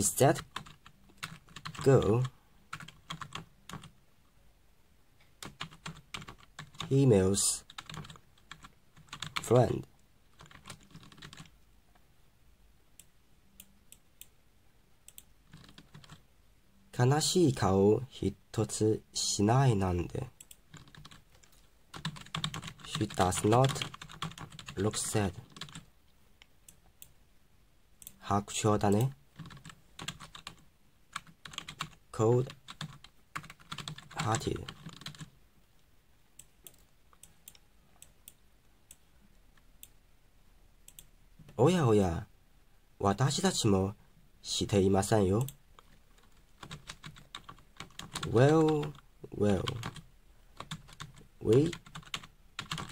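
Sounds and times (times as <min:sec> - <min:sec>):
keyboard and mouse clicks: 0:36.4 - 0:39.0.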